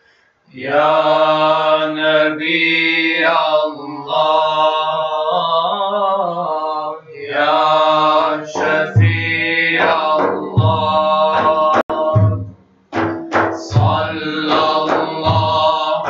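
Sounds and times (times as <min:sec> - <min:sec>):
men's group chanting: 0:00.5 - 0:12.4, 0:13.0 - 0:16.0
deep frame drum beats: 0:08.5 - 0:16.0.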